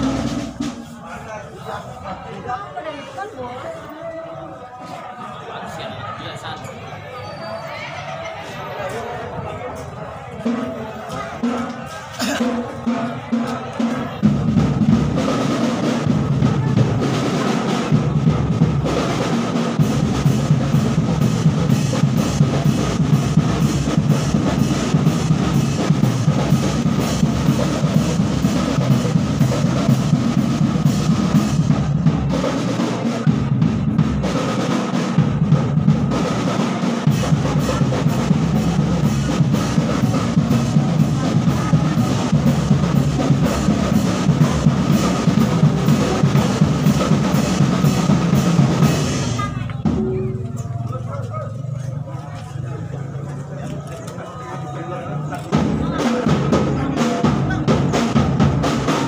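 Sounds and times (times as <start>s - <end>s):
drums and percussion beat: 0.0s - 1.3s, 9.3s - 53.8s, 55.2s - 59.0s.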